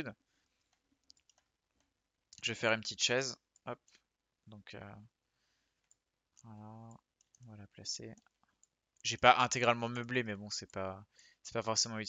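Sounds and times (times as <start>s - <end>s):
computer mouse clicks: 0.6s - 2.4s.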